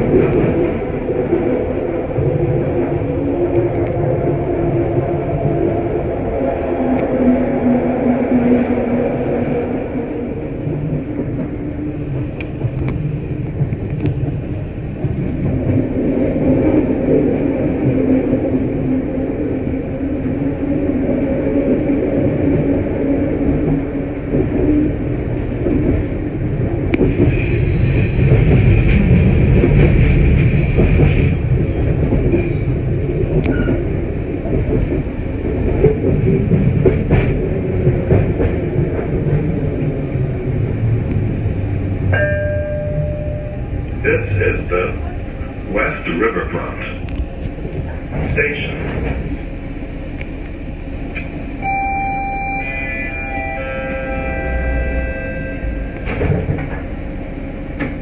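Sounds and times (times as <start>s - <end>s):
train rumbling on elevated track: 0.0s - 58.0s
train wheel squeal: 27.2s - 28.9s, 30.4s - 32.7s, 33.5s - 33.8s
short tone: 51.6s - 56.1s.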